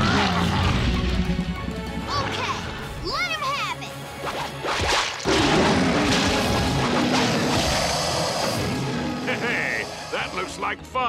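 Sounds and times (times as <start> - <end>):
dramatic orchestral music: 0.0 - 11.0.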